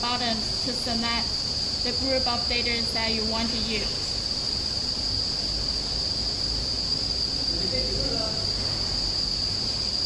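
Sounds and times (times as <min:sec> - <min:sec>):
high-pitched whine: 0:00.0 - 0:02.2, 0:03.2 - 0:10.0.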